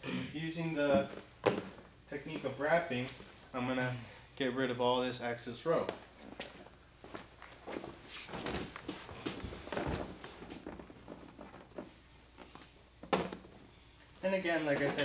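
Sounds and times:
rope rustling and rubbing: 0:06.1 - 0:15.0.

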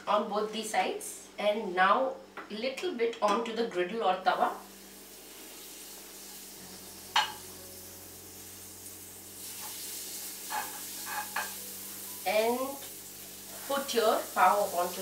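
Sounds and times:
butter sizzling on a griddle: 0:04.6 - 0:15.0
spoon scraping pan: 0:10.4 - 0:11.6.

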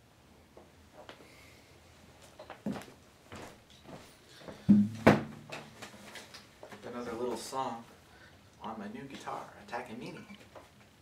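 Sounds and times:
knocks and bumps of handling: 0:04.7 - 0:06.8.

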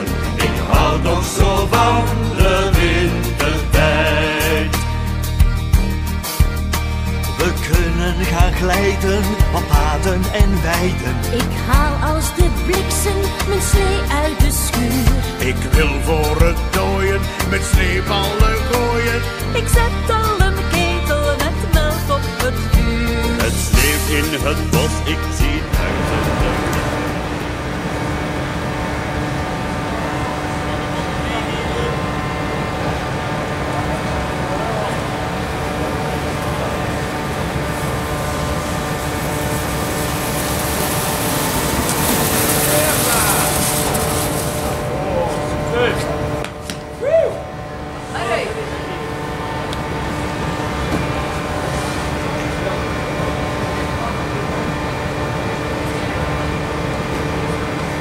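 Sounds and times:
background voices: 0:00.0 - 0:04.9, 0:23.4 - 0:27.8, 0:40.1 - 0:46.3
steady machine hum: 0:00.0 - 0:58.0
snow tube sliding on snow: 0:25.8 - 0:46.4.

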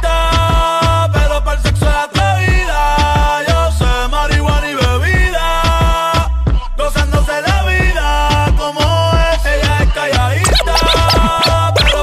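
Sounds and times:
reggaeton beat: 0:10.4 - 0:12.0
turntable scratches: 0:10.4 - 0:12.0.

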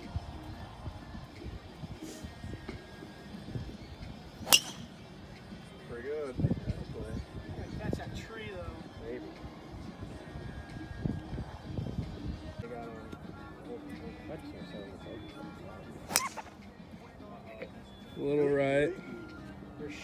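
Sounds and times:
golf club striking ball: 0:04.4 - 0:05.0, 0:16.1 - 0:16.6.

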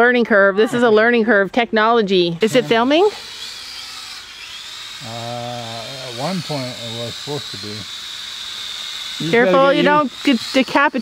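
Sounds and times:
drone propellers whining: 0:02.4 - 0:11.0.

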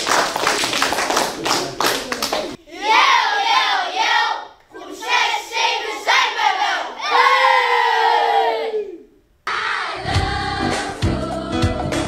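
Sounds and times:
children shouting and cheering: 0:02.7 - 0:10.0
background music with a beat: 0:10.0 - 0:12.0.

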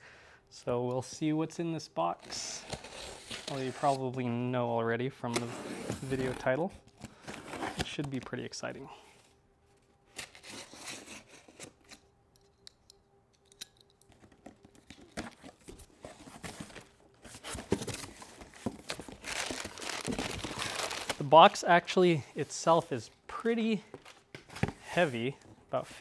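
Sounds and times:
packing tape tearing: 0:10.1 - 0:12.0, 0:14.2 - 0:21.2
paper packing crinkling: 0:14.6 - 0:21.6.

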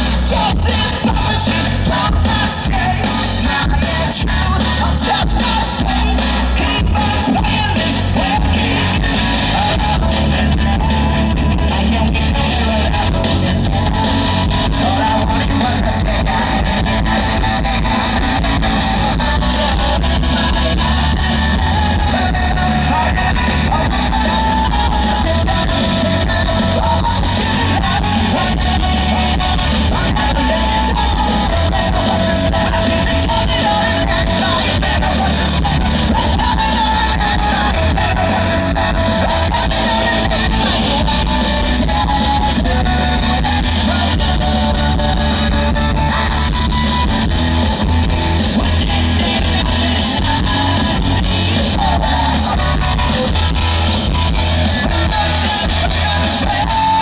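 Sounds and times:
live rock band: 0:00.0 - 0:57.0.

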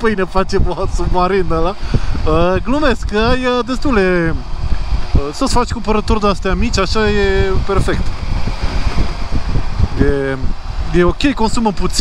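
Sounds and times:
road noise: 0:00.0 - 0:12.0
wind buffeting helmet: 0:00.0 - 0:12.0.

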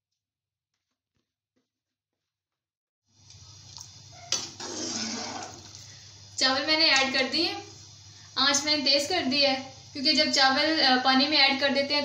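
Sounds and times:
stirring rice in boiling water: 0:03.3 - 0:05.9.

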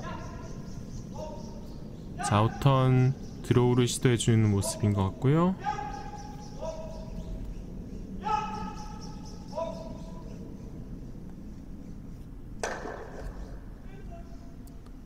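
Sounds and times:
curling players shouting: 0:08.2 - 0:10.0.

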